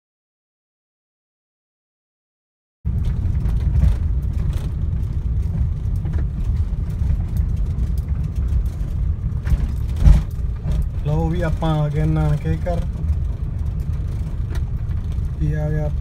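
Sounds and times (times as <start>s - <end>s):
car engine and road noise: 2.9s - 16.0s.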